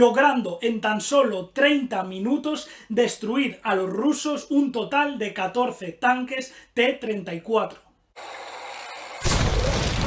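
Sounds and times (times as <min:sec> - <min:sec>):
heavy explosion: 0:09.2 - 0:10.0.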